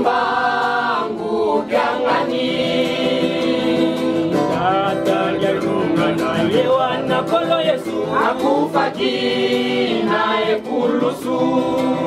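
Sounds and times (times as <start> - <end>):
young choir singing: 0.0 - 6.8, 8.0 - 12.0.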